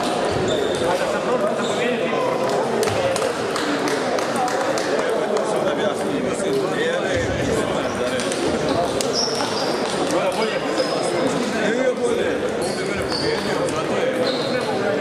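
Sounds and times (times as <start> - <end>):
shoes squeaking on floor: 0.0 - 2.0, 7.8 - 11.5, 12.6 - 14.8
murmur of many voices: 0.0 - 15.0.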